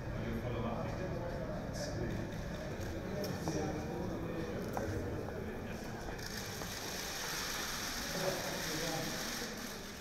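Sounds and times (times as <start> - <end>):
faint voices murmuring: 0.0 - 10.0.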